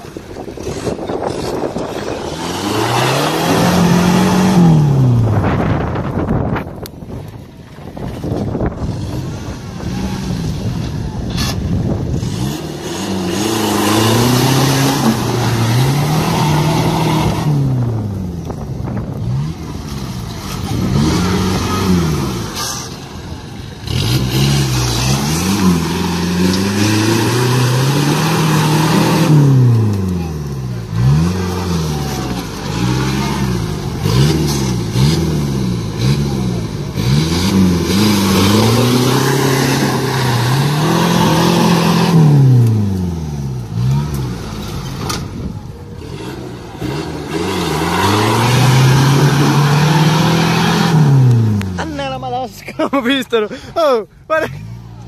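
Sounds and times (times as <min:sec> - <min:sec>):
off-road engine revving hard: 0:00.0 - 0:06.6, 0:08.2 - 0:55.0.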